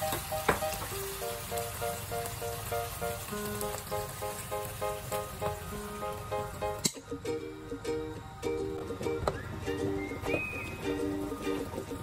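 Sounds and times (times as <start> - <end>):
pork chops sizzling in a pan: 0.0 - 7.0
background music of repeated notes: 0.0 - 12.0.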